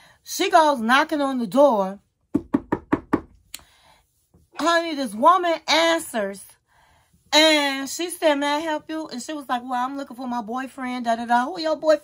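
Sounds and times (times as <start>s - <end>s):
knuckles knocking on door: 2.3s - 3.3s.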